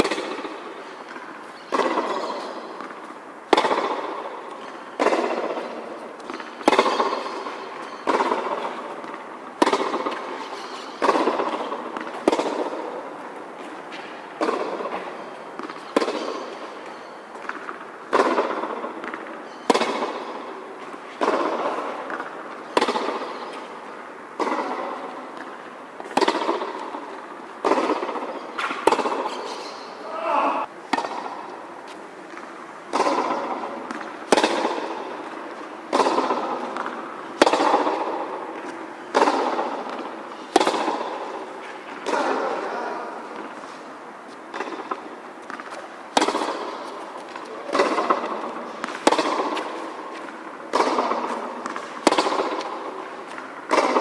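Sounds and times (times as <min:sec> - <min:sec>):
tennis ball hit by racket: 0:00.0 - 0:43.9, 0:44.5 - 0:54.0.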